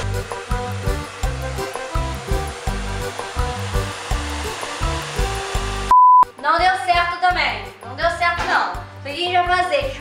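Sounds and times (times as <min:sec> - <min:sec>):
hair dryer blowing: 0:00.0 - 0:05.9
background music with beat: 0:00.0 - 0:06.4.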